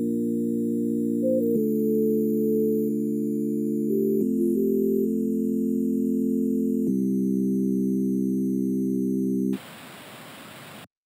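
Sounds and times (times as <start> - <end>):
steady hiss: 9.6 - 10.9.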